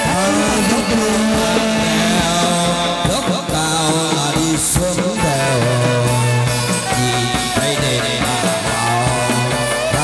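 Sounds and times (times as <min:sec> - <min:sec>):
ritual music ensemble: 0:00.0 - 0:10.0.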